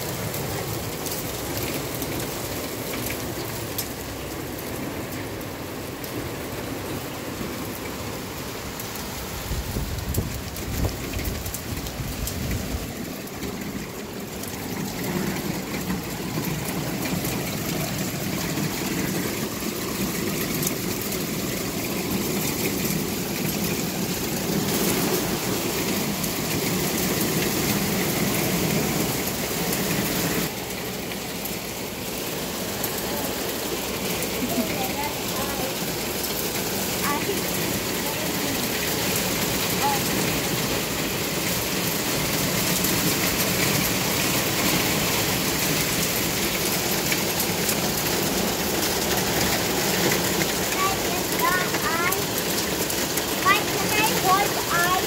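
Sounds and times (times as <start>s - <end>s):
hail and rain on wooden deck: 0.0s - 55.0s.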